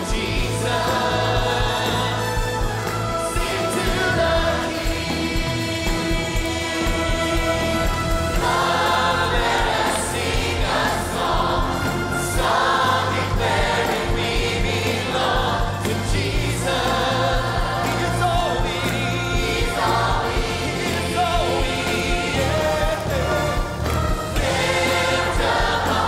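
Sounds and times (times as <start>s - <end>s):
band with steady drum beat: 0.0s - 26.0s
choir singing gospel song: 0.0s - 26.0s
soloists singing: 0.0s - 26.0s.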